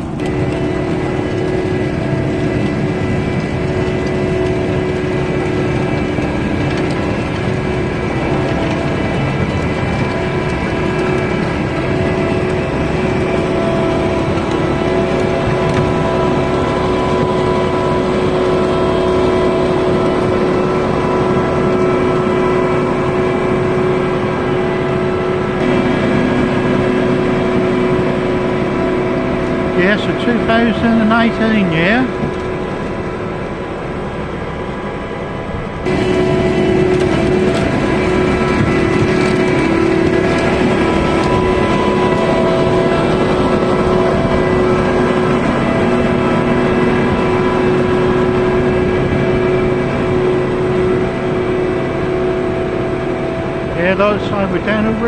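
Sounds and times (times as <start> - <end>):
harvester engine drone: 0.0 - 55.0
machinery clatter: 0.0 - 55.0.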